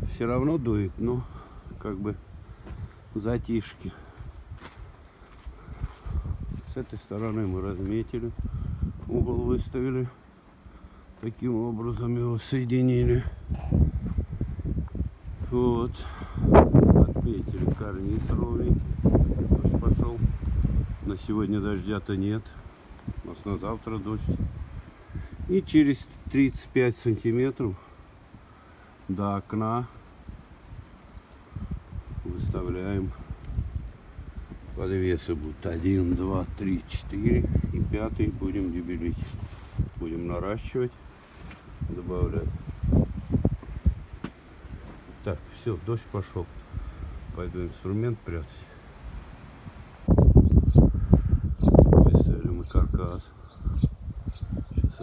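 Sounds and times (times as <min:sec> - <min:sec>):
wind buffeting microphone: 0:00.0 - 0:09.9, 0:12.4 - 0:26.7, 0:30.2 - 0:48.0, 0:49.0 - 0:55.0.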